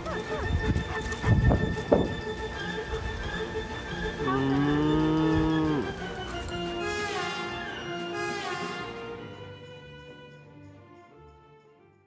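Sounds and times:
cow mooing: 4.2s - 6.1s.

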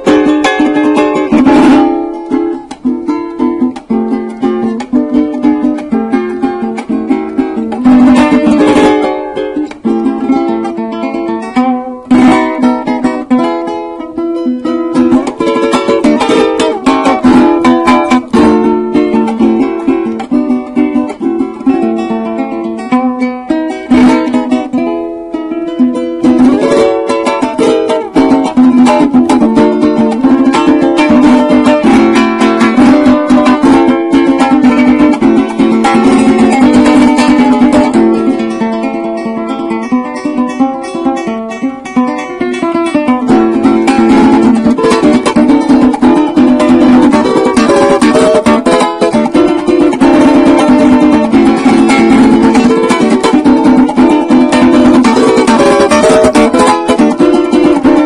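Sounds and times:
plucked and strummed small guitar: 0.0s - 58.0s.

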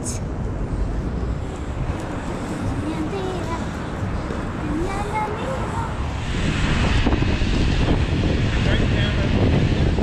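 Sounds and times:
city background rumble: 0.0s - 10.0s.

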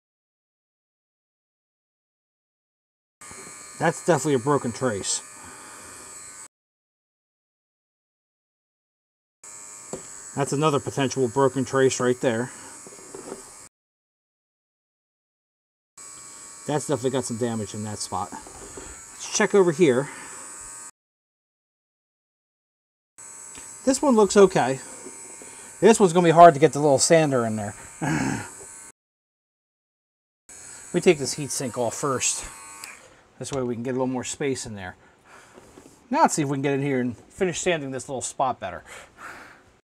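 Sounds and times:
rotary tool buzzing: 3.2s - 6.5s, 9.4s - 13.7s, 16.0s - 21.0s, 23.2s - 29.0s, 30.5s - 33.6s
man talking: 3.8s - 5.3s, 10.4s - 12.6s, 16.7s - 18.5s, 19.2s - 20.1s, 23.9s - 24.9s, 25.8s - 28.3s, 31.0s - 32.5s, 33.4s - 35.0s, 36.1s - 38.9s.

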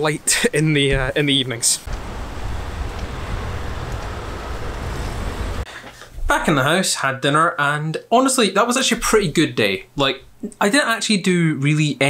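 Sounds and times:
cars driving past: 1.8s - 5.7s.

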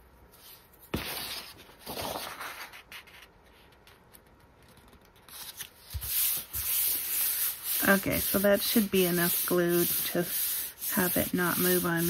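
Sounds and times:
paper rustling: 0.4s - 12.0s
hands rubbing paper: 5.2s - 12.0s.

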